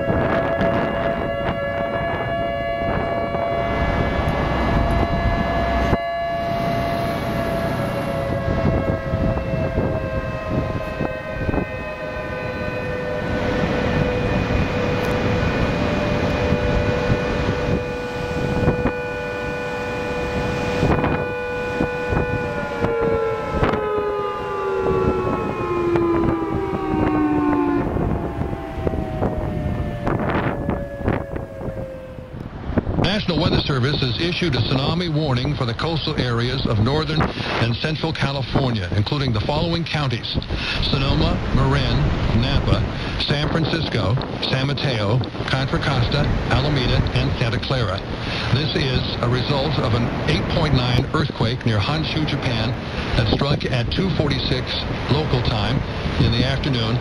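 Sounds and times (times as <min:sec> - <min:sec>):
warning siren two-pitch tone: 0:00.0 - 0:33.0
rushing noise: 0:00.0 - 0:38.4, 0:39.3 - 0:57.0.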